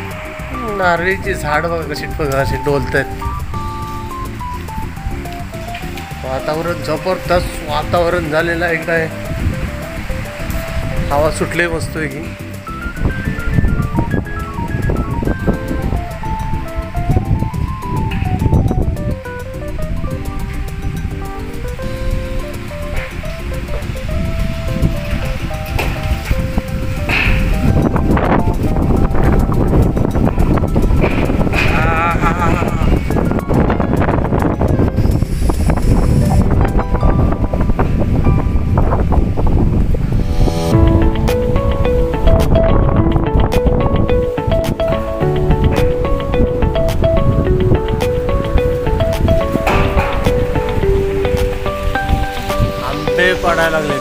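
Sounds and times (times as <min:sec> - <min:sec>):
background music: 0:00.0 - 0:54.0
wind gusting against microphone: 0:00.0 - 0:54.0.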